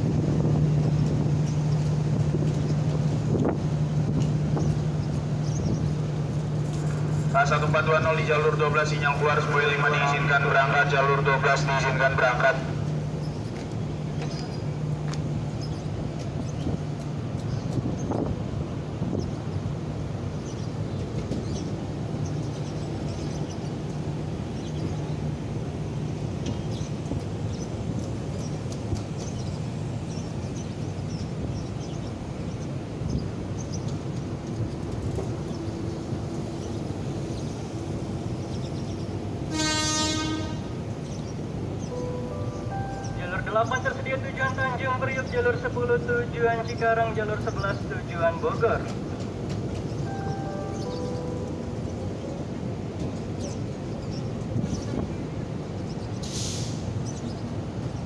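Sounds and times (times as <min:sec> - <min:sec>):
train coaches rumbling on rails: 0:00.0 - 0:58.0
train horn toot: 0:39.5 - 0:40.8.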